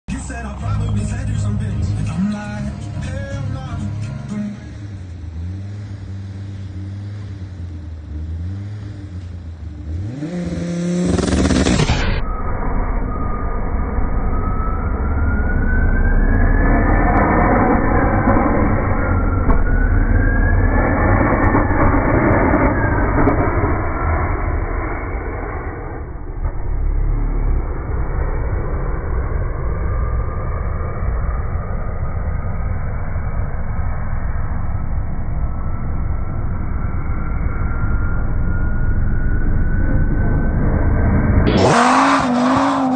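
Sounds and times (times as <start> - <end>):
race car engine revving: 0.1 - 42.9
slowed engine whines: 0.1 - 42.9.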